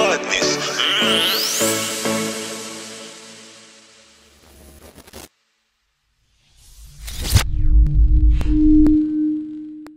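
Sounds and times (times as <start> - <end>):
noisy whoosh hit: 6.3 - 9.1
deep rumble: 6.6 - 9.7.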